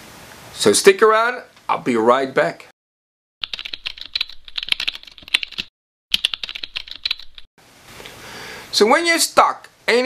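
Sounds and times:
faint hiss: 7.6 - 10.0.

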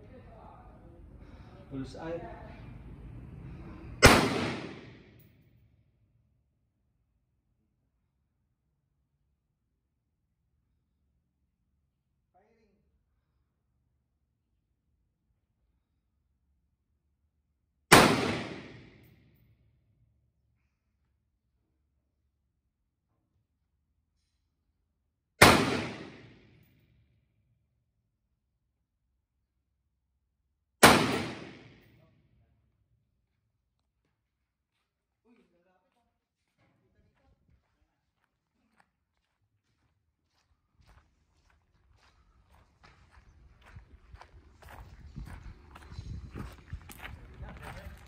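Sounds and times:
rifle shot with echo: 4.0 - 5.2, 17.9 - 19.1, 25.4 - 26.6, 30.8 - 32.0.

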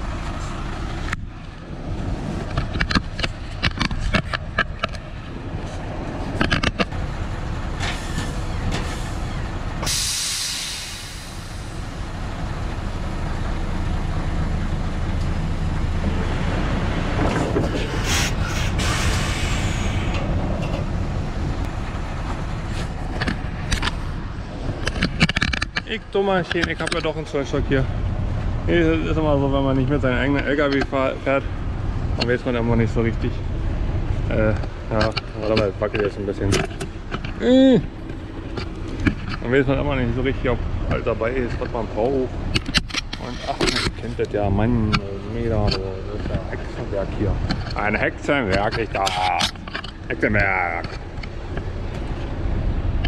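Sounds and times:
truck engine running: 0.0 - 53.0
compressed air hiss: 9.8 - 11.9, 18.0 - 20.3.

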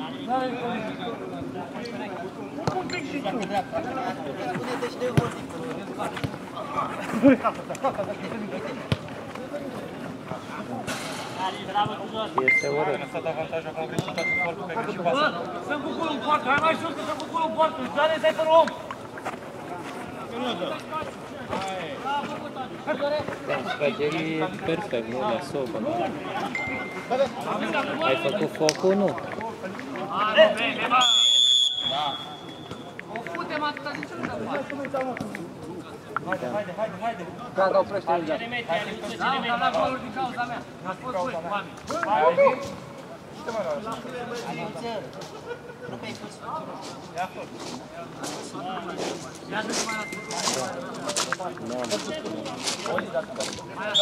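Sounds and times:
referee's whistle: 31.0 - 32.9.

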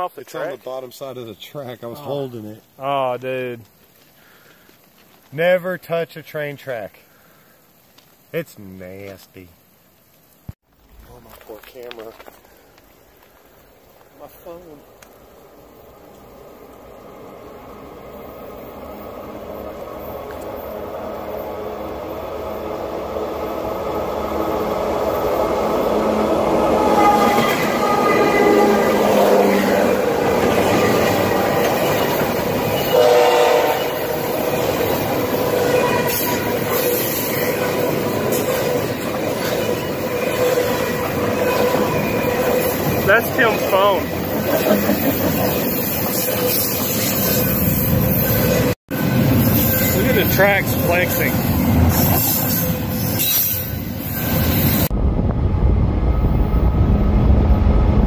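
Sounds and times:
freight train wheels rumbling on rails: 14.1 - 58.0.

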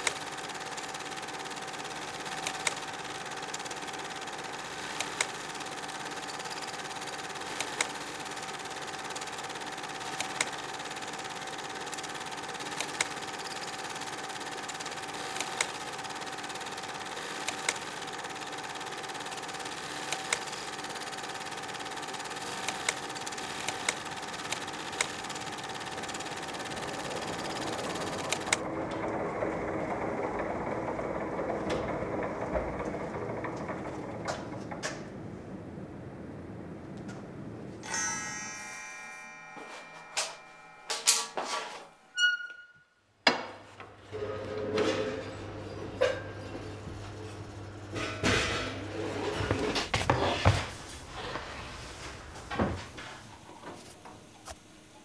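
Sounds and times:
machine whirring hum: 0.0 - 38.0.

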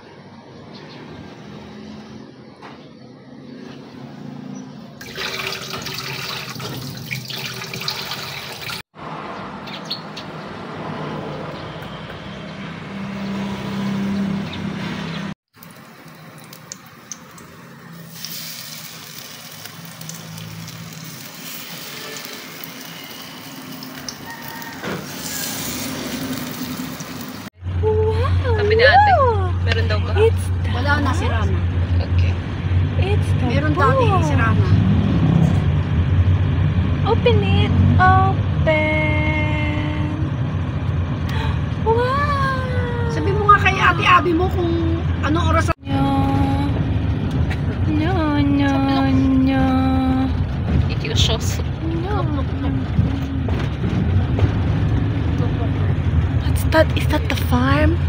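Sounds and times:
tap water running into sink: 5.0 - 8.8.

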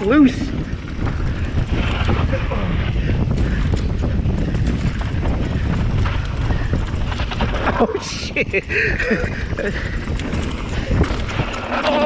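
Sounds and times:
bike rattling over rough dirt: 0.0 - 12.0
tyre noise rumble: 0.0 - 12.0
wind on microphone: 0.0 - 12.0.

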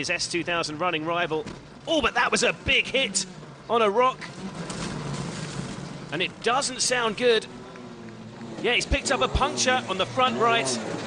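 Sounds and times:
rally car engine from inside: 3.0 - 6.4, 7.1 - 11.0.

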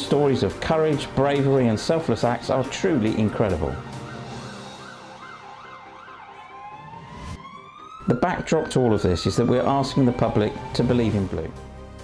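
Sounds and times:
emergency vehicle siren: 2.6 - 11.6.

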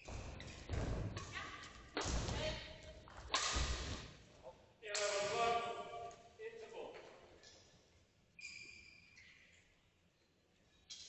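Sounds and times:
rackets striking shuttlecock: 3.3 - 3.8.

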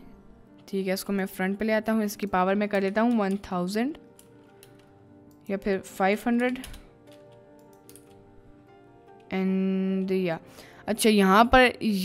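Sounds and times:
quiet background music: 0.0 - 12.0
keyboard keys clicking: 0.5 - 8.2.

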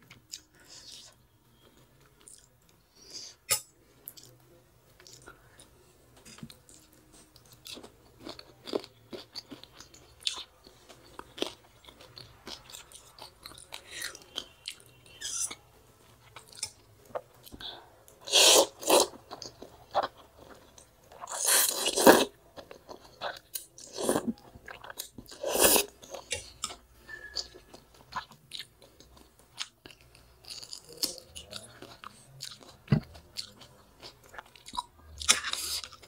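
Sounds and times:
slurping noodles: 18.2 - 19.1.

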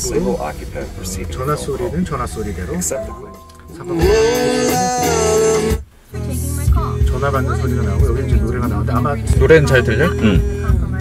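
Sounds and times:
song with guitar over car speakers: 2.4 - 11.0.

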